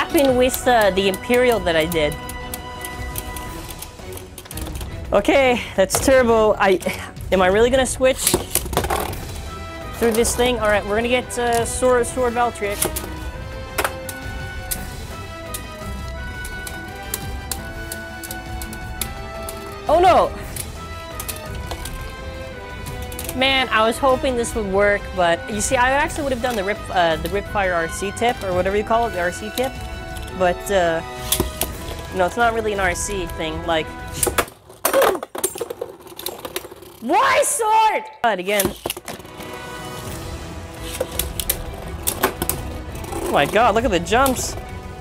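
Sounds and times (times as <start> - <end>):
tops clicking together: 0.0 - 5.1, 11.2 - 23.6
background music with held notes: 0.0 - 34.8, 38.8 - 45.0
rapid plastic clattering: 34.1 - 37.1.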